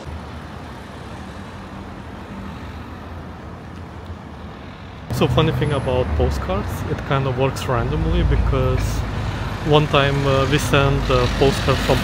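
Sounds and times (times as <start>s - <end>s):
passing cars hum: 0.0s - 12.0s.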